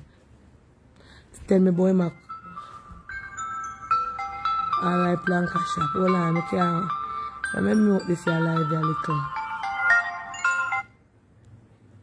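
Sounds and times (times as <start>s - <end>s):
phone ringtone melody: 2.1s - 11.1s.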